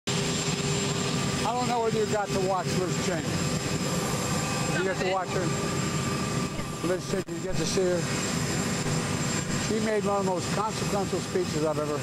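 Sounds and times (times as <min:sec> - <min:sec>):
aircraft turbine engines idling: 0:00.1 - 0:12.0
man speaking: 0:04.8 - 0:05.6, 0:06.7 - 0:08.2, 0:09.5 - 0:12.0.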